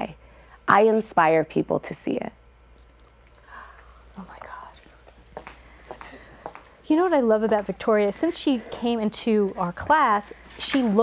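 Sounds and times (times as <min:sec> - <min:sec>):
faint whisper: 0:03.5 - 0:05.2
high heels clicking on stage floor: 0:05.3 - 0:07.7.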